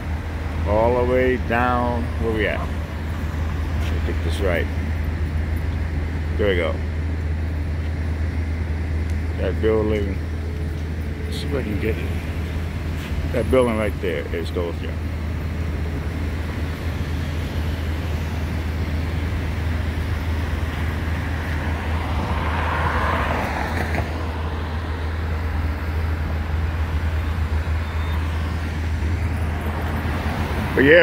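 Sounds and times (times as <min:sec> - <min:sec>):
street traffic rumble: 0:00.0 - 0:31.0
vehicle passing: 0:09.6 - 0:31.0.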